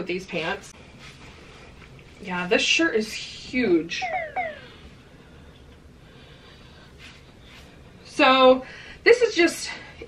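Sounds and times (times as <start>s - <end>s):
short falling vocal sounds: 4.0s - 4.8s.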